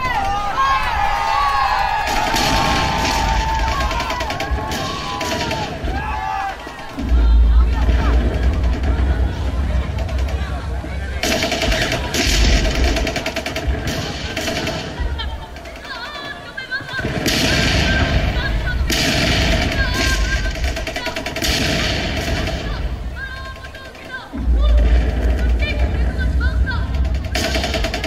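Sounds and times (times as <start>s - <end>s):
machine-gun fire bursts: 2.0s - 28.0s.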